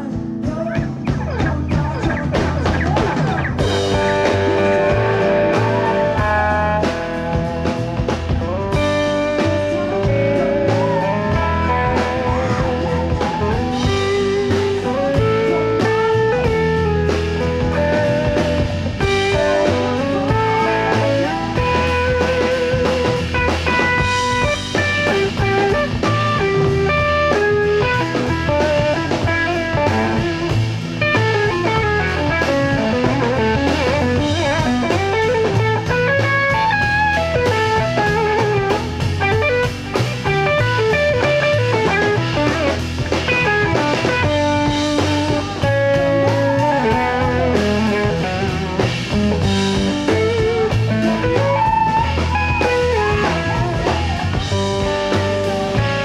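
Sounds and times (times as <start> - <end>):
drum kit: 0.0 - 56.0
electric guitar lead line: 0.0 - 56.0
upright double bass: 0.0 - 56.0.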